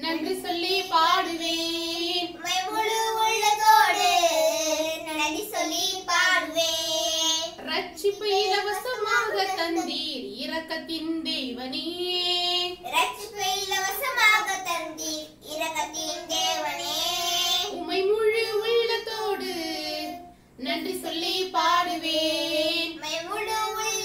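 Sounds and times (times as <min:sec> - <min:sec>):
children and woman singing: 0:00.0 - 0:14.7, 0:15.8 - 0:24.0.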